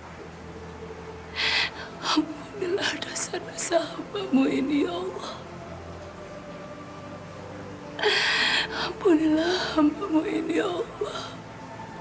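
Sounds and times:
woman crying: 8.0 - 11.4.

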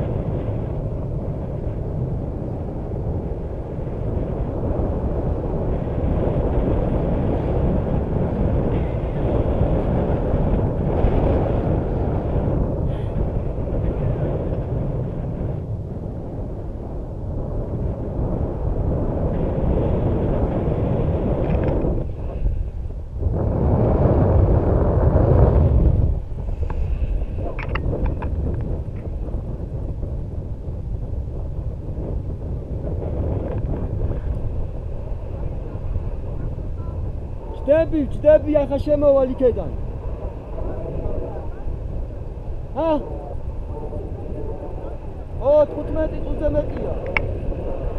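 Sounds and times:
wind rushing over microphone: 0.0 - 47.9.

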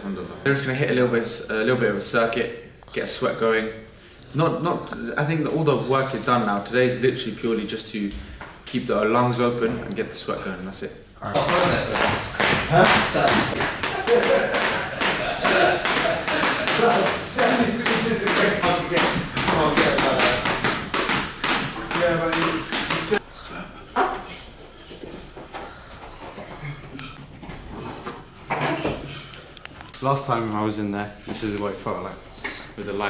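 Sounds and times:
voices: 11.2 - 24.4
feet landing: 11.4 - 23.2
skipping rope slapping floor: 11.4 - 23.2.

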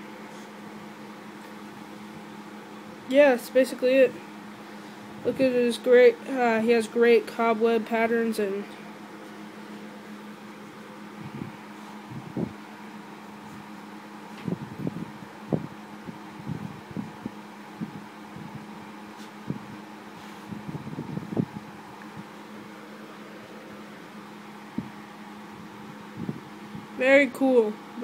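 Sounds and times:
low mechanical hum: 0.0 - 28.0.

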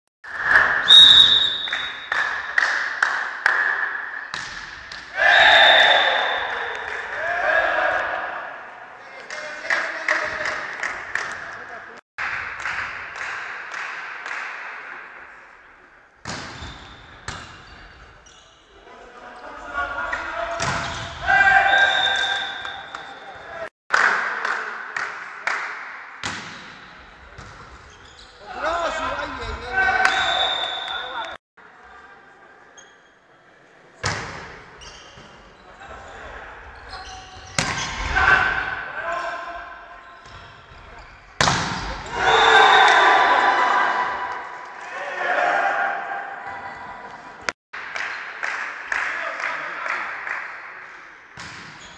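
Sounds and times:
volleyball smacks: 41.4 - 42.0
people shouting: 42.1 - 44.2.

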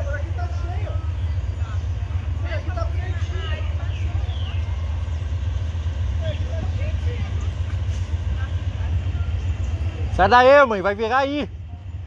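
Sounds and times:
distant engines rumbling: 0.0 - 12.0.

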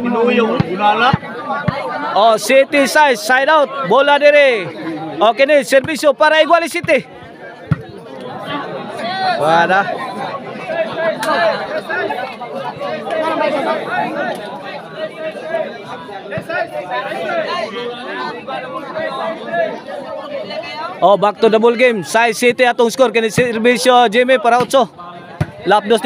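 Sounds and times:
crowd chattering: 0.0 - 26.0
volleyball being hit: 7.7 - 8.0, 25.4 - 25.6.

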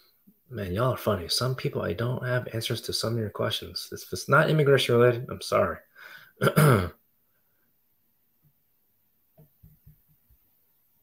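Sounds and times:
man clearing his throat: 6.4 - 7.0.

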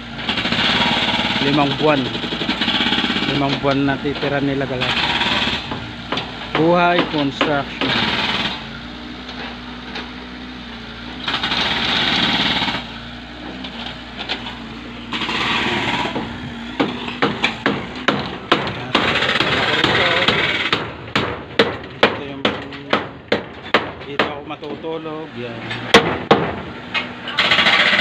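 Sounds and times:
excavator engine running: 0.0 - 28.0
rapid sharp knocks: 4.2 - 8.6, 15.1 - 24.5, 25.9 - 26.6.

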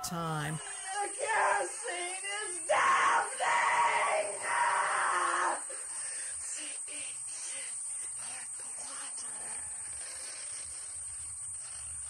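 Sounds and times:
breathy hissing vocal sounds: 0.0 - 8.5
tape hiss: 0.0 - 12.0
thin high whine: 0.0 - 12.0.

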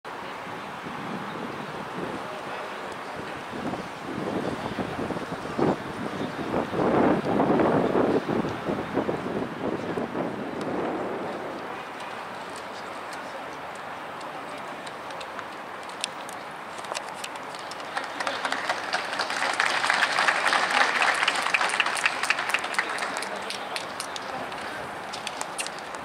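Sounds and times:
wind buffeting microphone: 0.1 - 26.0.

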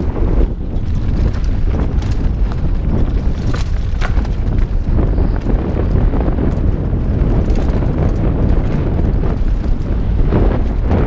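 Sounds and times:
bike clicks and rattles: 0.0 - 11.0
wind buffeting microphone: 0.0 - 11.0.

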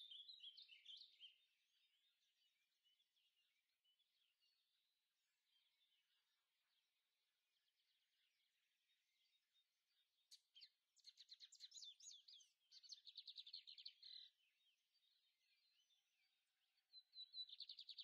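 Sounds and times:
songbird chirping trills: 0.0 - 18.0.

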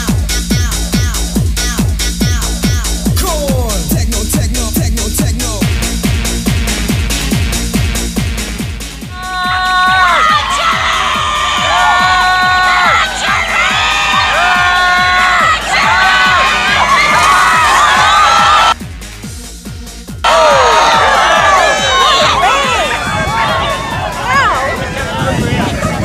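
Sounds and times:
crowd cheering and shouting: 9.1 - 18.8, 20.2 - 26.0.

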